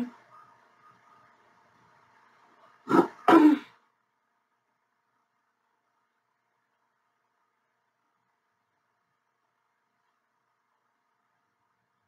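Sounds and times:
woman clearing her throat: 2.9 - 3.8.

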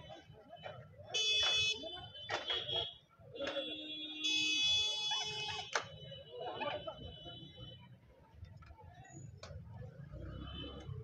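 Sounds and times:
murmur of crowd: 0.0 - 11.0.

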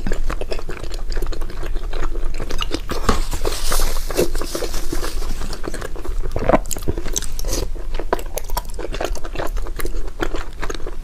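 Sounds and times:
chewing and wet mouth sounds: 0.0 - 11.0.

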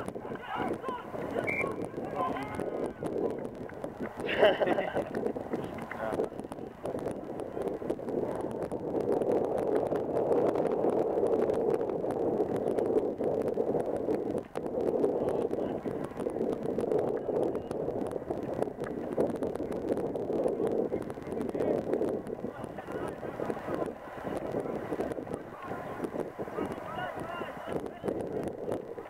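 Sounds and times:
fine crackles: 0.0 - 29.0
wind buffeting microphone: 0.0 - 29.0.

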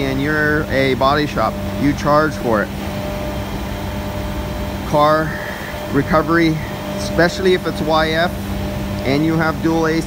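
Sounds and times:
faint steady tones: 0.0 - 10.0
machinery humming: 0.0 - 10.0.

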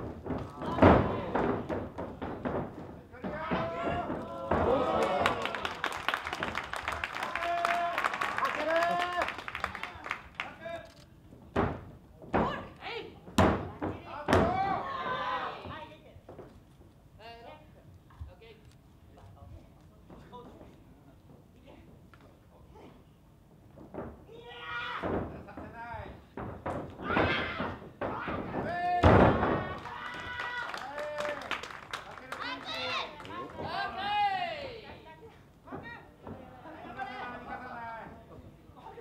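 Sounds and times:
sharp knocks on wrestling ring: 13.3 - 14.8
thuds on wrestling ring canvas: 13.3 - 14.8, 26.3 - 29.8.

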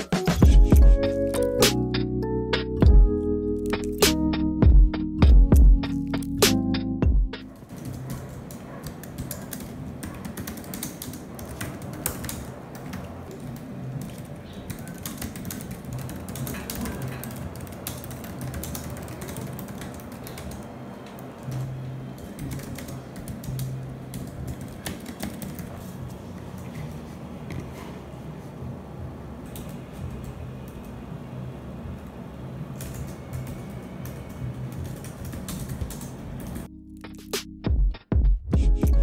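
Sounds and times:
laptop keyboard typing: 0.0 - 27.8, 29.4 - 31.1, 32.0 - 36.7.

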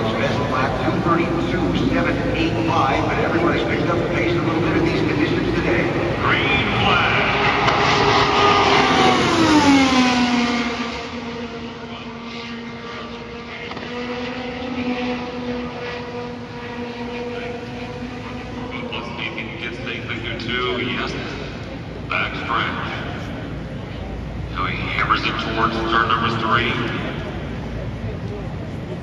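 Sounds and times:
race car engine passing: 0.0 - 29.0.

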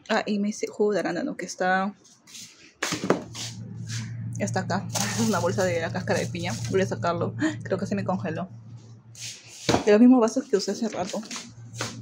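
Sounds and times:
refrigerator low hum: 3.1 - 12.0.

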